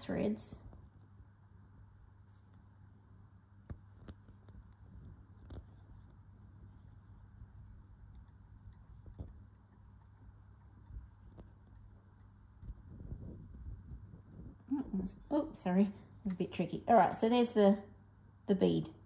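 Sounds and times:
low steady hum: 0:00.0 - 0:19.0
soft clicks of needle and bead: 0:03.6 - 0:13.0.

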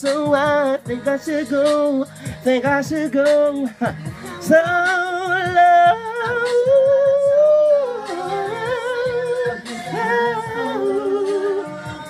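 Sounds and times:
backing track with low beat: 0:00.0 - 0:12.0.

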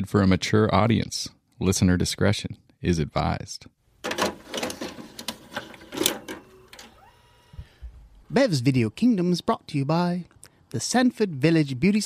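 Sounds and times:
mechanical clicks and rattles: 0:04.0 - 0:07.0
faint whir with rising tone: 0:06.3 - 0:08.0.

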